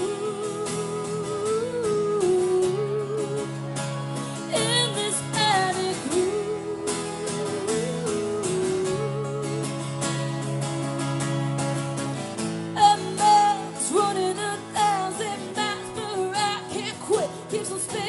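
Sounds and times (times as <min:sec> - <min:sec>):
woman singing: 0:00.0 - 0:11.3, 0:12.7 - 0:18.0
acoustic guitar chords: 0:00.0 - 0:18.0.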